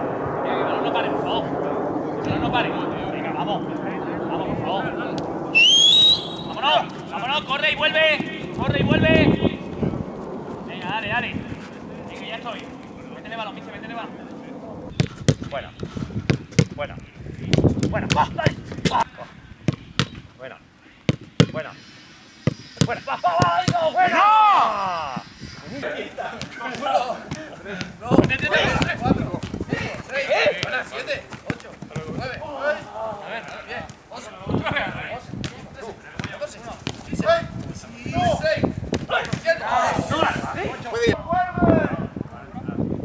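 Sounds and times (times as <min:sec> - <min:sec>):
footballs being struck: 0:14.9 - 0:15.6, 0:16.2 - 0:16.8, 0:17.4 - 0:18.9, 0:19.7 - 0:20.2, 0:21.1 - 0:21.6, 0:30.5 - 0:32.2, 0:36.2 - 0:37.1, 0:38.9 - 0:39.5
football kick: 0:16.2 - 0:16.8, 0:19.7 - 0:20.2, 0:38.9 - 0:39.5
players shouting: 0:22.9 - 0:29.2.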